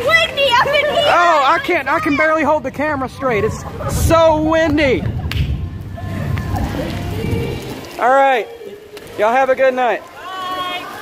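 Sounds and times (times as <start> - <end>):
strong wind buffeting microphone: 0.0 - 8.0.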